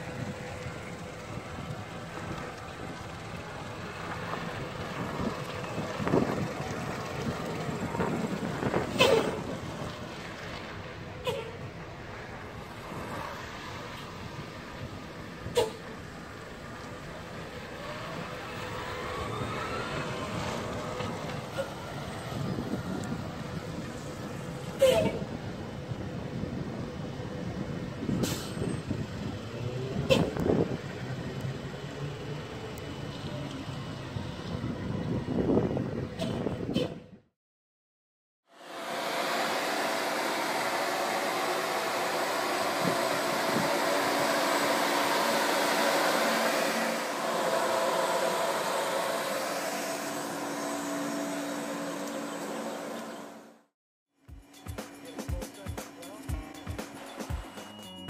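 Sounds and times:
truck low rumble: 0.0s - 37.3s, 38.5s - 53.7s
faint rising whine: 38.5s - 53.7s.

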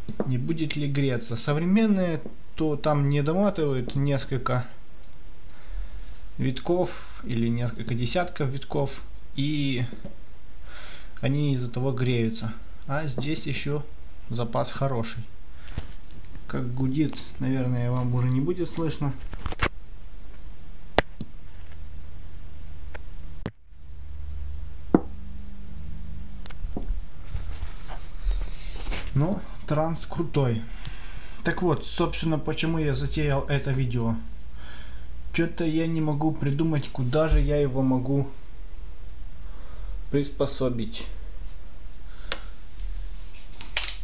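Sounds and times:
transformer mains hum: 0.0s - 44.0s.

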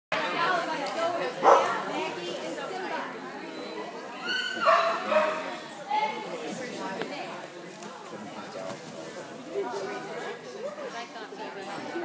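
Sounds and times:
people chatting: 0.2s - 12.0s
dog barking: 1.4s - 1.7s, 4.6s - 5.4s.

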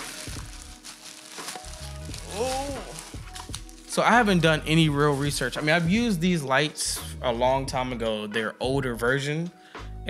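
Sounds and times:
plastic bag crinkling: 0.0s - 4.0s
person humming: 1.9s - 3.6s.

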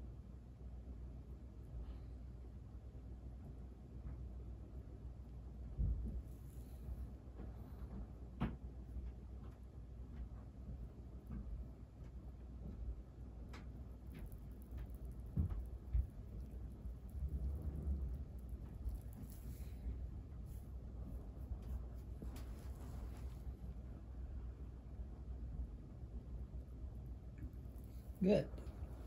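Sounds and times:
soft low thumps: 5.7s - 23.9s
fingers rustling in hair and cloth: 13.6s - 23.9s, 26.6s - 29.0s.

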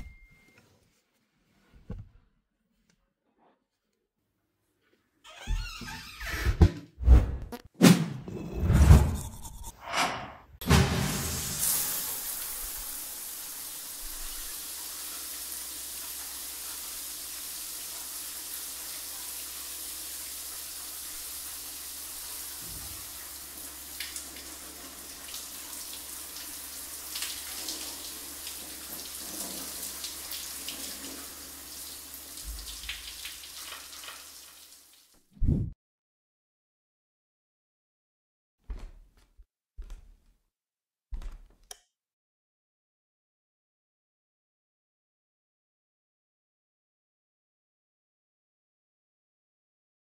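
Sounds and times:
shower water spraying: 11.0s - 35.1s.

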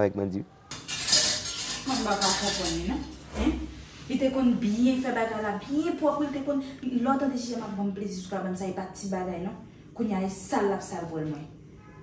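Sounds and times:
dishes and cutlery clinking in sink: 0.7s - 3.6s.

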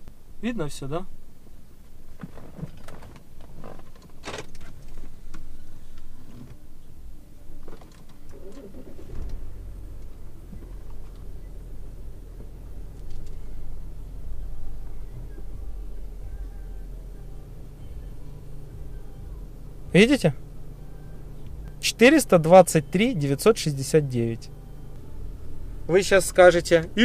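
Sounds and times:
diesel engine starting and idling: 0.0s - 27.0s.

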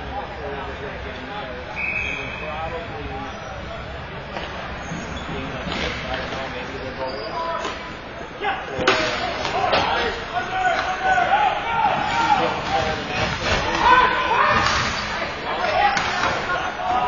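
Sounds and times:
people shouting and cheering: 8.4s - 17.0s.

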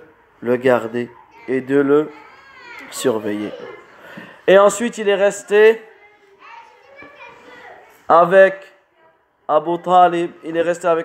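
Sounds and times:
faint children's voices: 0.0s - 11.0s.

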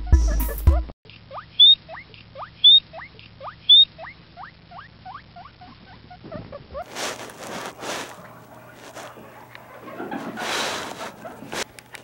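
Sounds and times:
guinea pig squeaking: 0.1s - 9.2s
guinea pig squealing: 1.3s - 9.2s.

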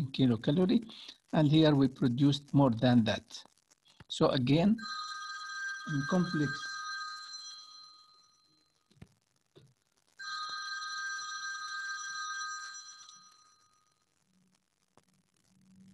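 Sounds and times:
faint clicks: 3.3s - 4.2s
phone ringing: 4.8s - 8.8s, 10.2s - 14.0s.

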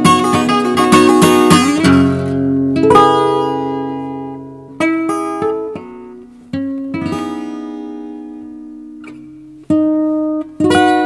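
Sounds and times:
fingerpicked acoustic guitar: 0.0s - 11.0s.

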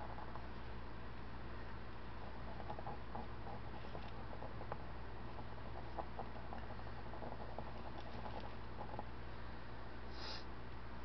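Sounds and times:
electric fan humming: 0.0s - 11.0s.

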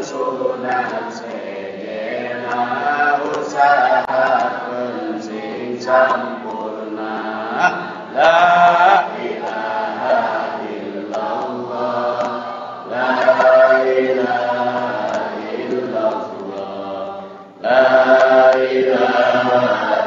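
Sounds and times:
group chanting in unison: 0.0s - 20.0s.

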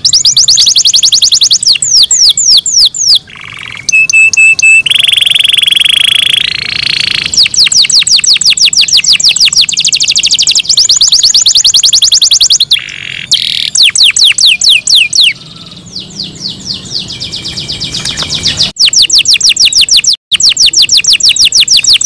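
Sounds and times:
canary singing: 0.0s - 22.0s.

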